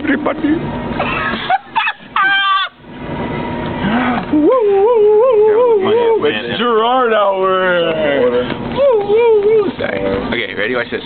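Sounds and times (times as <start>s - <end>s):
person squealing laugh: 1.0s - 2.8s, 3.8s - 6.0s
short rising yelps: 1.5s - 2.9s.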